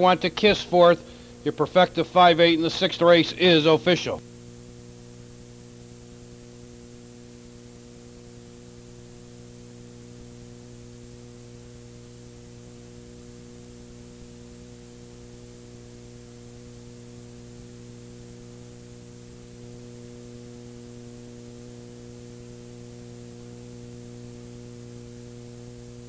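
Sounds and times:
constant hiss: 0.0s - 26.0s
electrical mains hum: 0.0s - 26.0s.

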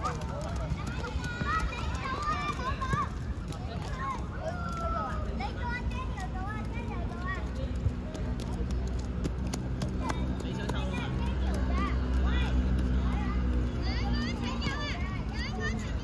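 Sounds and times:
city traffic hum: 0.0s - 16.0s.

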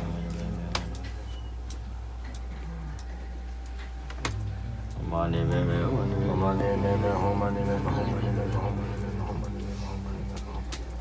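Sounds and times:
steady low hum: 0.0s - 11.0s
soft regular ticks: 0.2s - 6.2s, 8.4s - 11.0s.

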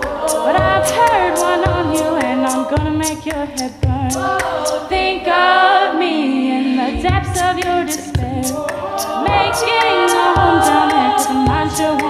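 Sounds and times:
vocal percussion beat: 0.0s - 5.9s, 6.8s - 12.0s
women singing harmony: 0.0s - 12.0s.

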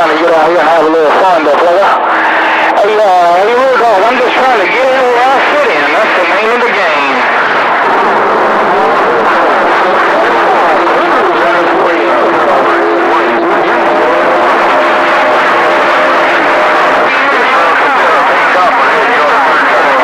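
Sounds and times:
garbled radio voices: 0.0s - 20.0s
radio static: 0.0s - 20.0s.

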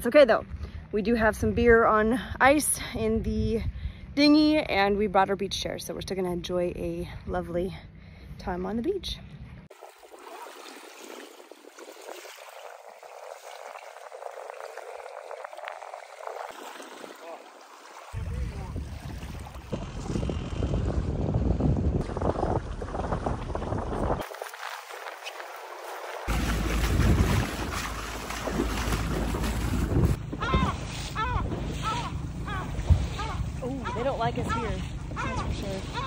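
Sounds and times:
wind on microphone: 0.4s - 5.5s, 18.1s - 24.4s, 26.3s - 36.0s
water rushing past boat: 9.6s - 36.0s
waves lapping on pebbles: 9.7s - 19.8s, 22.0s - 32.1s.

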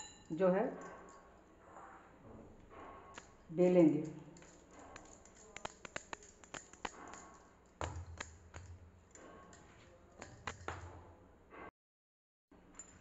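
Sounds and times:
glass bangles clicking: 0.0s - 1.3s, 3.2s - 11.0s
hands kneading dough: 4.4s - 11.0s
dough thudding on stone: 4.9s - 9.0s, 10.2s - 11.2s.

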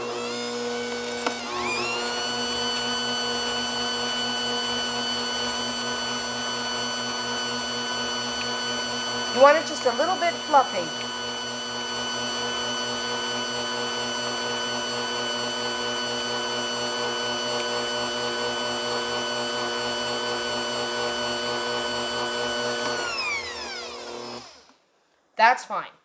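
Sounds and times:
kitchen mixer motor whining: 0.0s - 24.8s.

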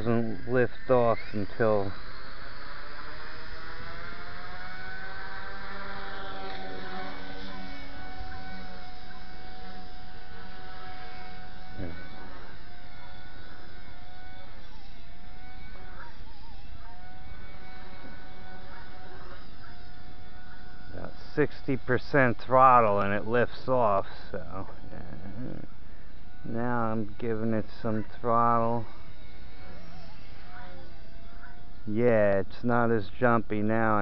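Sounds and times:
toy helicopter motor and rotor whine: 0.0s - 34.0s.

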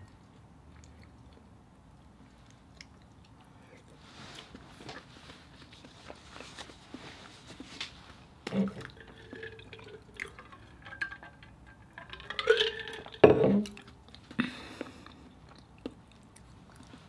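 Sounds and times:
liquid sloshing: 8.5s - 14.0s
bottle knocking on wooden table: 13.2s - 13.6s.

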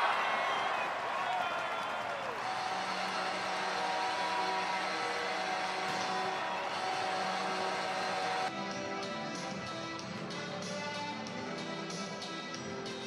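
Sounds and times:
crowd din: 0.0s - 8.4s.

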